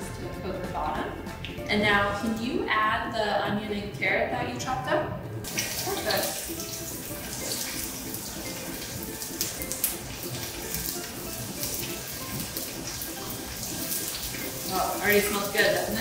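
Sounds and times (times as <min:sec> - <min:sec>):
vegetables sizzling in frying pan: 0:05.5 - 0:16.0.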